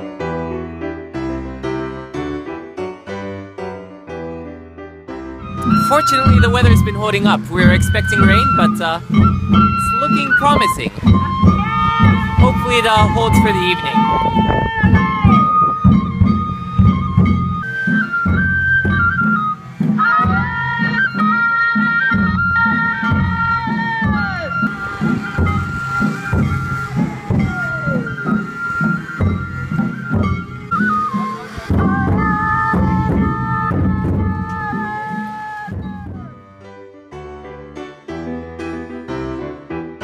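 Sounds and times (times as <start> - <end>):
bamboo flutes playing melody: 5.4 - 36.5
taiko drums beating: 5.5 - 36.4.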